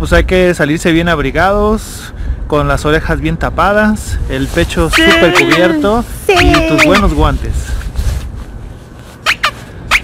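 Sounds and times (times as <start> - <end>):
wind rumbling on microphone: 0.0 - 9.0
short high-pitched squeaks: 4.9 - 5.8, 9.2 - 10.0.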